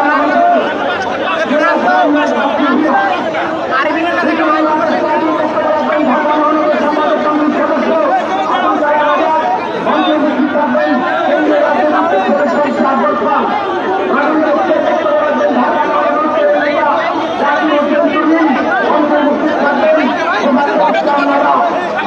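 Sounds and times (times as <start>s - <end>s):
people chattering: 0.0s - 22.0s.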